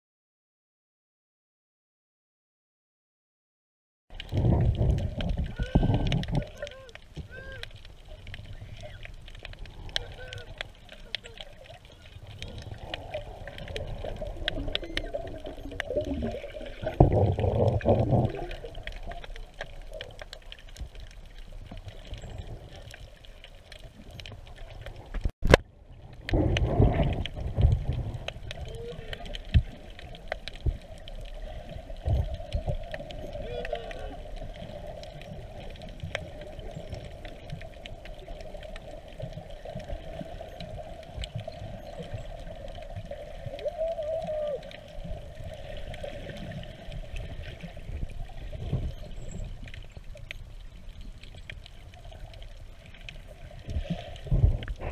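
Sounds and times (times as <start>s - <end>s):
underwater water movement: 4.1s - 54.9s
rumbling: 12.0s - 19.6s.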